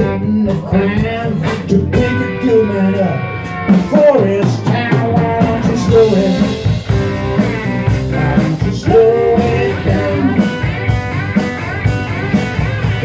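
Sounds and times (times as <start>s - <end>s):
drum kit: 0.0s - 13.0s
electric bass: 0.0s - 13.0s
electric guitar: 0.0s - 13.0s.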